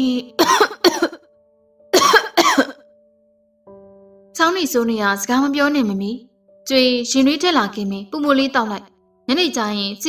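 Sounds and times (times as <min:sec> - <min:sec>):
soft background music: 0:00.0 - 0:10.0
person coughing: 0:00.4 - 0:01.3, 0:02.0 - 0:02.8.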